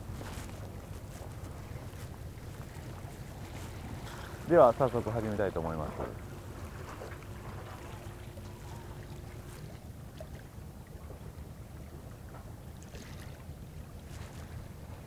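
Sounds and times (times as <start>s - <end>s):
water against breakwater: 0.0s - 15.0s
wind: 0.0s - 15.0s.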